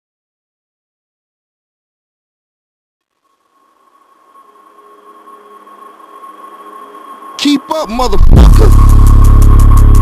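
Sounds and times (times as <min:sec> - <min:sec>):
hiss with steady high tone: 0:03.2 - 0:07.8.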